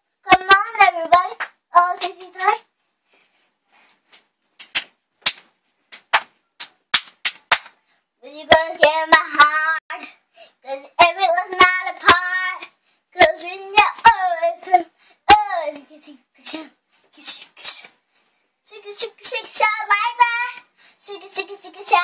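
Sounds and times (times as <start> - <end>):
girl singing: 0.2 - 2.7, 8.2 - 17.9, 18.7 - 22.0
sharp hand claps: 1.3 - 2.5, 4.2 - 7.8.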